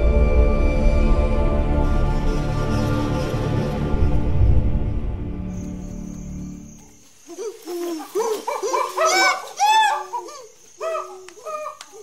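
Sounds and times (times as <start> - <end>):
background music: 0.0 - 6.8
hooting ape calls: 6.4 - 12.0.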